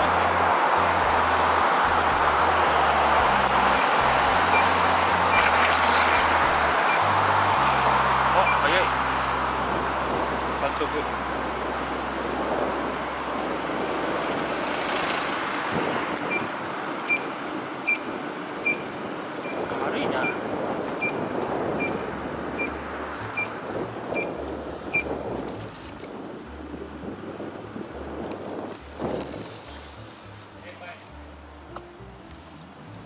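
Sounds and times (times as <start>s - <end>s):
wind and road noise: 0.0s - 33.0s
high electronic beep: 6.9s - 8.7s, 22.6s - 23.6s.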